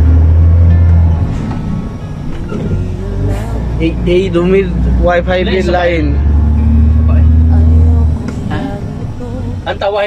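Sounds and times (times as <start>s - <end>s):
heavy vehicle engine drone: 0.0s - 10.0s.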